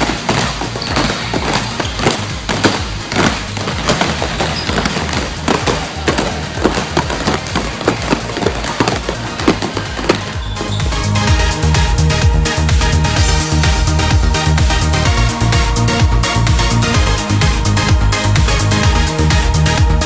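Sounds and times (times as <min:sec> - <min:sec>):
background music with steady beat: 0:00.0 - 0:20.0
basketballs bouncing on court: 0:00.0 - 0:20.0.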